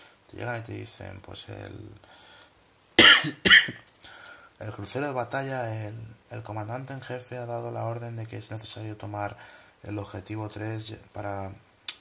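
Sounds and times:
man speaking: 0:00.4 - 0:02.0, 0:04.6 - 0:11.6
man coughing: 0:03.0 - 0:03.8.

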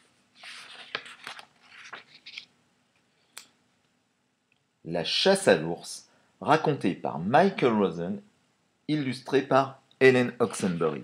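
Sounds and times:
book rustling: 0:00.3 - 0:02.5.

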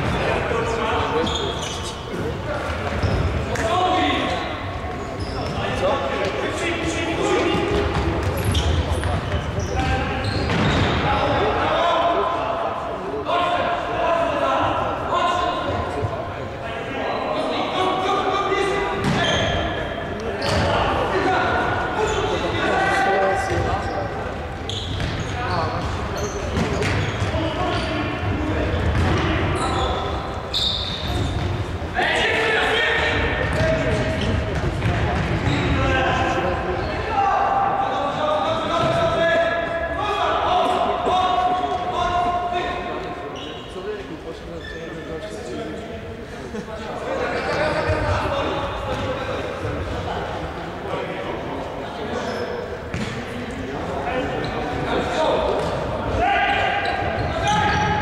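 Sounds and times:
players shouting: 0:30.9 - 0:34.2.

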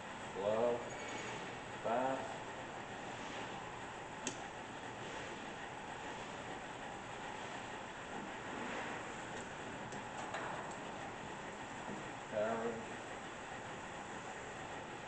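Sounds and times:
lathe running: 0:00.0 - 0:15.0.

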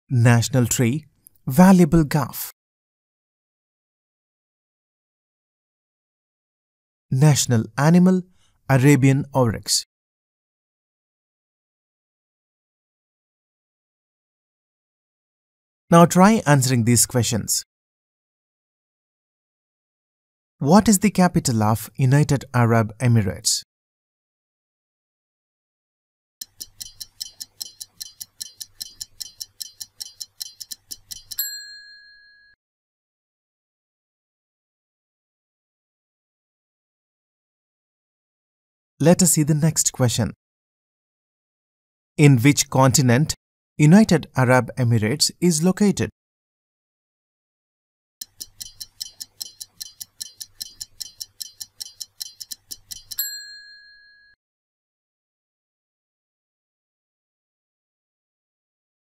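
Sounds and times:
stopwatch ticking: 0:26.4 - 0:31.5, 0:48.2 - 0:53.3
bell-like ding: 0:31.4 - 0:32.6, 0:53.2 - 0:54.4.

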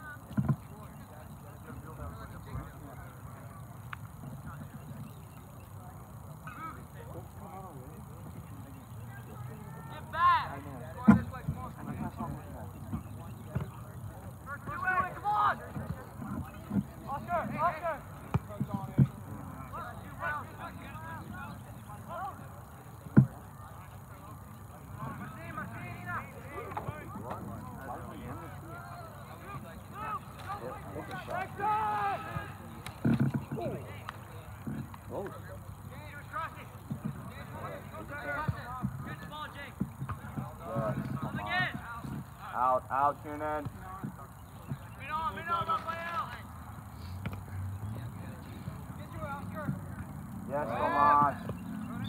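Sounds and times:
soccer ball kicked: 0:18.2 - 0:19.2, 0:38.4 - 0:42.2
people shouting: 0:28.6 - 0:32.7, 0:50.5 - 0:51.4.

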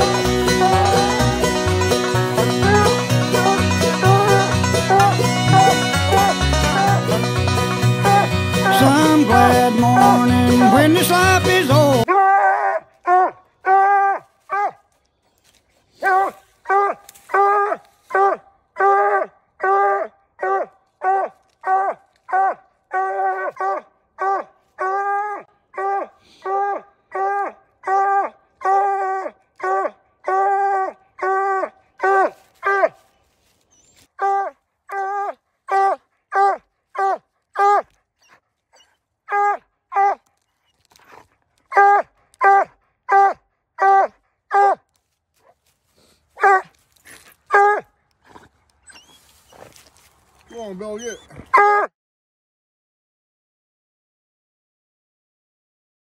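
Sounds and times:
hound barking: 0:00.0 - 0:10.8, 0:12.1 - 0:14.8, 0:16.0 - 0:33.0, 0:34.2 - 0:40.3, 0:41.0 - 0:44.8, 0:46.4 - 0:48.4.

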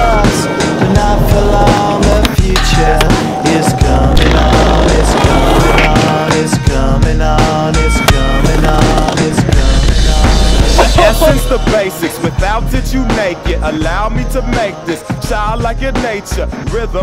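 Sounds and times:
hip-hop music with heavy bass: 0:00.0 - 0:17.0
skateboard clacking: 0:01.5 - 0:06.6, 0:08.1 - 0:09.6
skateboard wheels rolling on stone: 0:04.2 - 0:06.6, 0:08.2 - 0:10.2.

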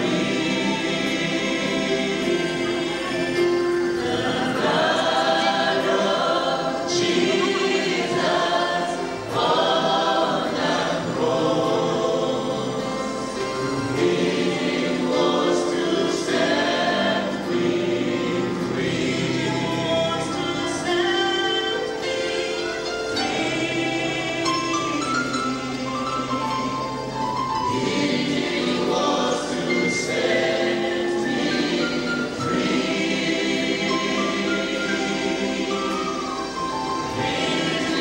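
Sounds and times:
group singing a gospel song: 0:00.0 - 0:38.0.

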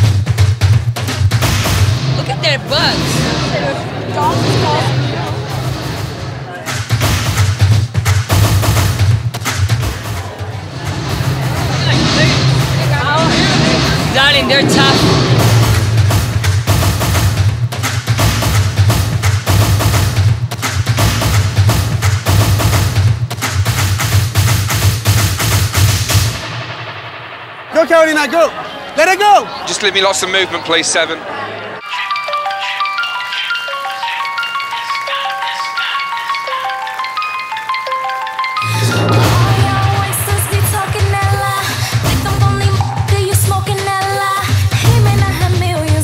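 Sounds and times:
drum line marching beat: 0:00.0 - 0:26.8, 0:38.8 - 0:46.0.

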